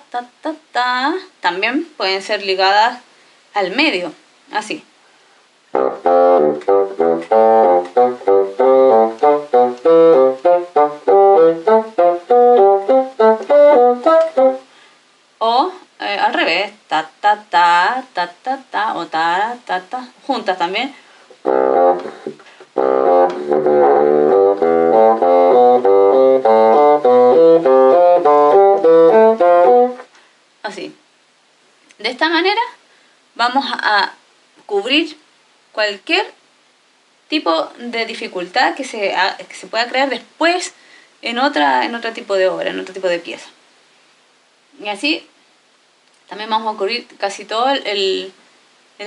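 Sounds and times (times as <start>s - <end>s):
bassoon playing short notes: 5.8s - 14.6s, 21.4s - 30.0s.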